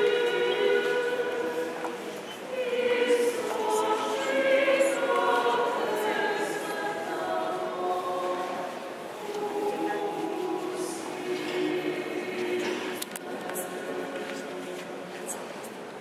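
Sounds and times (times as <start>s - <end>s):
choir singing a hymn: 0.0s - 15.6s.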